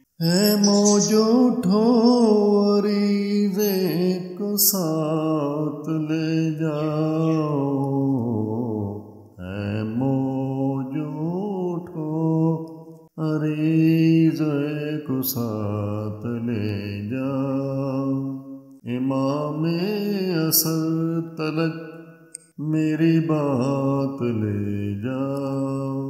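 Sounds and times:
man chanting wordlessly: 0:00.0 - 0:12.6, 0:22.6 - 0:26.0.

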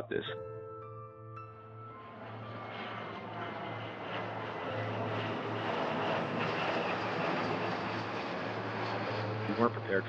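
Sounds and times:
jet airliner flying overhead: 0:01.2 - 0:10.0.

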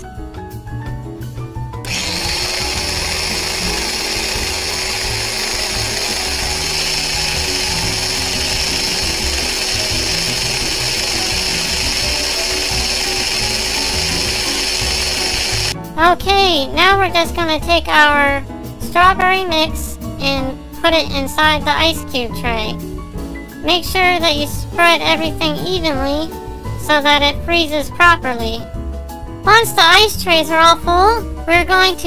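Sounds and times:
electric blender running: 0:01.8 - 0:15.8.

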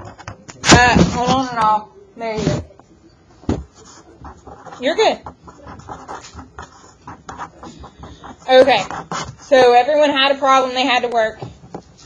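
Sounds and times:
felt-tip pen scratching on paper: 0:00.0 - 0:01.5, 0:03.5 - 0:10.4.

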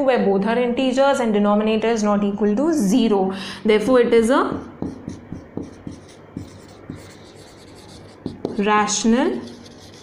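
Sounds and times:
marker tip tapping: 0:04.5 - 0:08.7
marker writing on whiteboard: 0:04.5 - 0:10.0.

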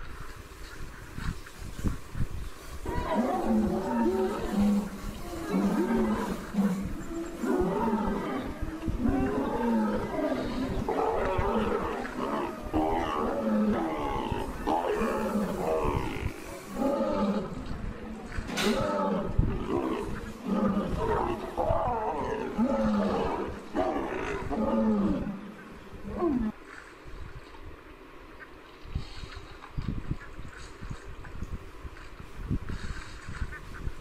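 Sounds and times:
lion roaring and growling: 0:02.8 - 0:26.6.

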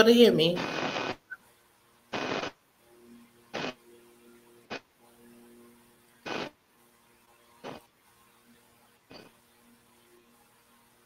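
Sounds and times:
faint hum: 0:00.0 - 0:11.0
bursts of hiss: 0:00.6 - 0:01.4, 0:02.1 - 0:02.6, 0:03.5 - 0:03.8, 0:06.2 - 0:06.6, 0:07.6 - 0:07.9.

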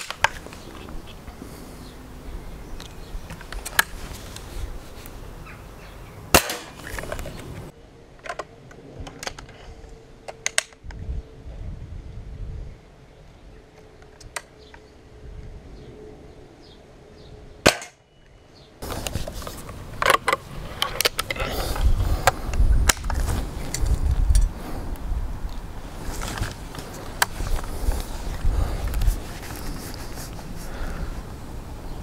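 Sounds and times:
air rifle shot: 0:06.3 - 0:06.8.

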